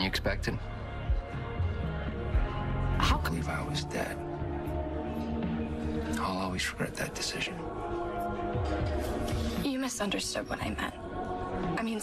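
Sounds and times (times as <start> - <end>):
dramatic background score: 0.0 - 12.0.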